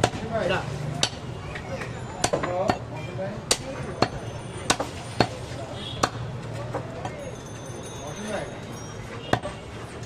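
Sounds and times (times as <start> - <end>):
cleaver chopping meat on wood: 0.0 - 0.3, 1.0 - 1.2, 2.2 - 5.4, 6.0 - 6.2.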